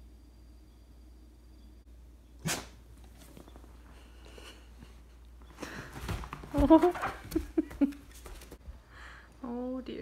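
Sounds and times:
faint shuffling: 3.0 - 8.8.

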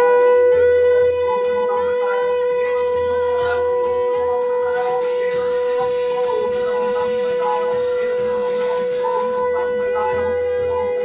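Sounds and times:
conch shell blown: 0.0 - 11.0.

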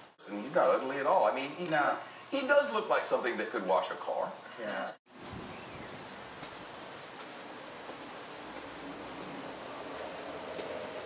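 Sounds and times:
background hiss: 0.0 - 11.0.

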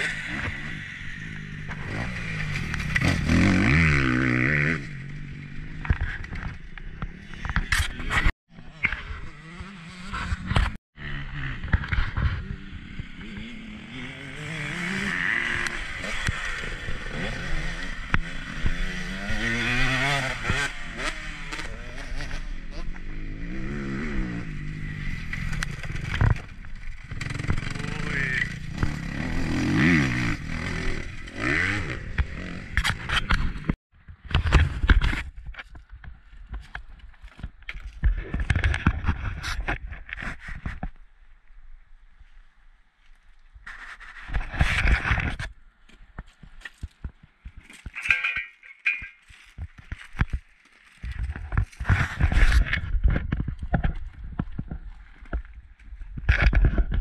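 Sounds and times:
motocross bike engine revving: 0.0 - 6.4, 7.0 - 33.8.

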